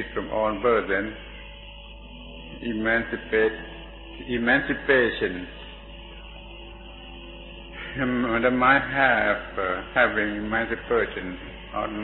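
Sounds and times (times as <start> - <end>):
low drone of held tones: 0.0 - 12.0.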